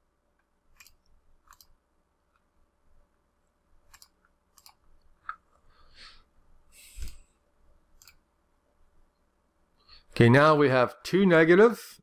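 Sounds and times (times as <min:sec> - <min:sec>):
computer mouse clicks: 0:00.4 - 0:02.5, 0:03.8 - 0:05.5, 0:07.9 - 0:08.2.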